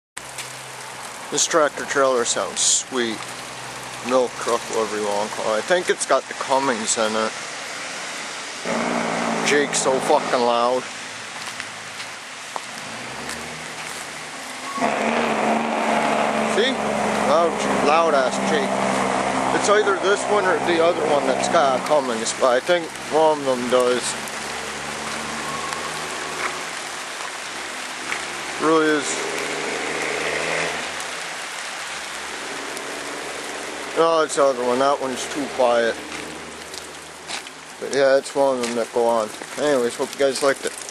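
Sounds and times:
tyre and road noise: 0.2 - 40.9
diesel truck engine: 8.5 - 10.9, 12.7 - 27.1.

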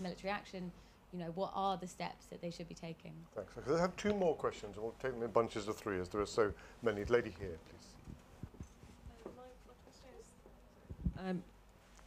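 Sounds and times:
microphone handling thumps: 8.0 - 9.5, 10.8 - 11.3.

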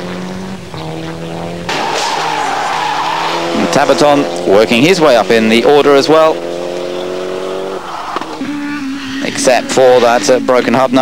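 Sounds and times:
rally car engine revving: 0.0 - 11.0.

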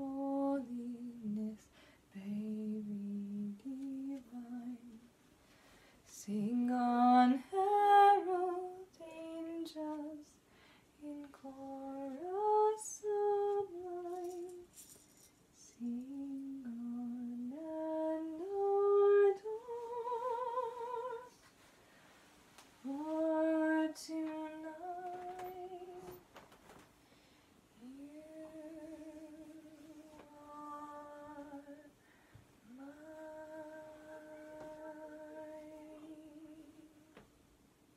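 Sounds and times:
woman humming a lullaby: 27.8 - 31.9, 32.7 - 37.2.

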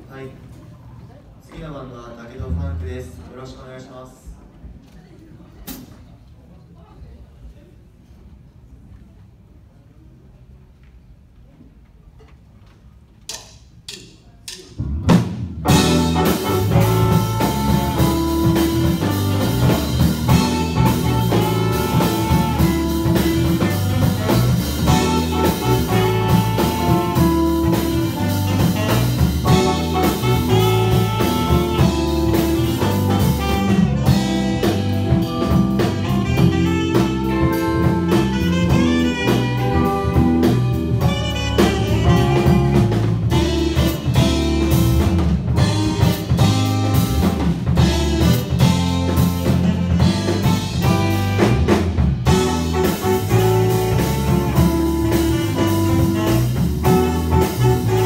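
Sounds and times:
drum kit: 13.3 - 58.0
electric bass: 14.8 - 58.0
alto saxophone: 15.6 - 58.0.

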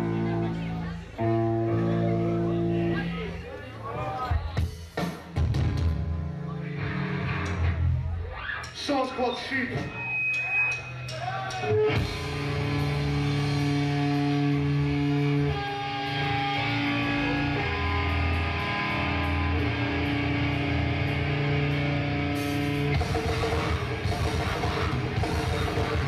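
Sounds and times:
electric guitar ringing chords: 0.0 - 3.1, 12.0 - 26.0
drums: 0.0 - 26.0.

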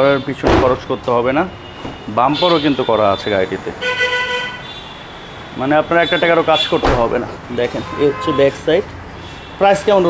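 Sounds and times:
man talking: 0.0 - 3.8, 5.6 - 8.9, 9.6 - 10.0
vehicle horn toot: 1.6 - 6.8, 7.8 - 8.6.

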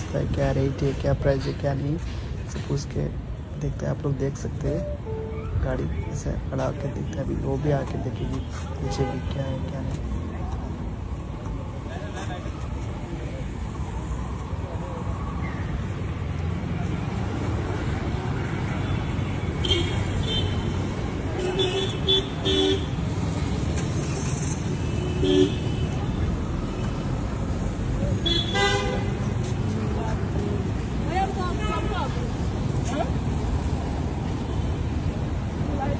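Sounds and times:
road traffic rumble: 0.0 - 35.9
vehicle horn toots: 28.2 - 29.1.

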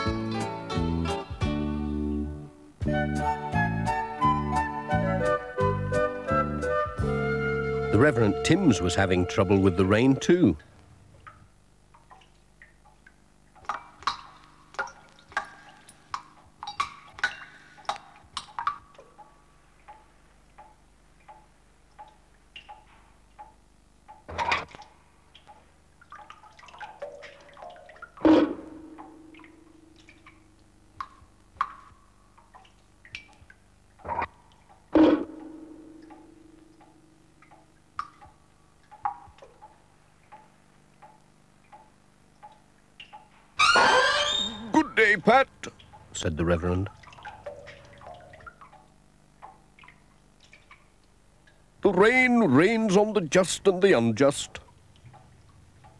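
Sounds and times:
water dripping into metal buckets: 0.0 - 1.8, 7.8 - 55.9
ringing water plonks: 8.0 - 55.9.

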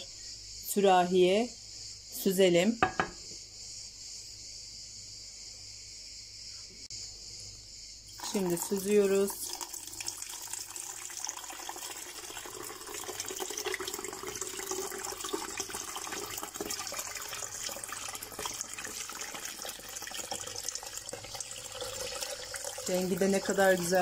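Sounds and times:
liquid pouring into a pitcher: 8.1 - 24.0
liquid splashing and trickling: 8.1 - 24.0.

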